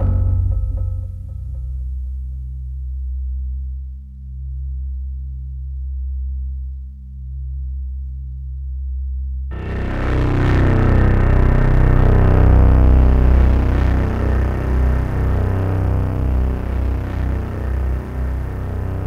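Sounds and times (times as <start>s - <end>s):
electronic drone music: 0.0s - 2.4s, 9.5s - 19.0s.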